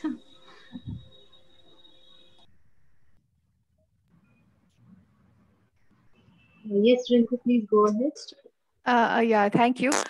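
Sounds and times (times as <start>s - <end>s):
thin high whine: 0.0s - 3.2s.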